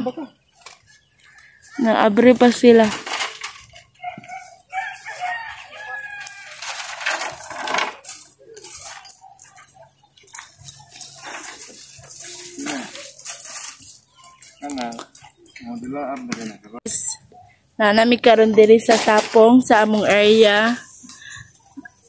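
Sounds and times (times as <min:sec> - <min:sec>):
metal chain clinking and rattling: 0:01.4 - 0:16.6.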